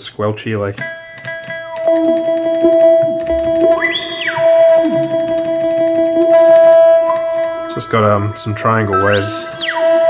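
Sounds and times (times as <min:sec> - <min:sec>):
synthesizer triangle-wave notes: 0:00.8 - 0:10.0
squelchy synthesizer filter sweep: 0:01.7 - 0:10.0.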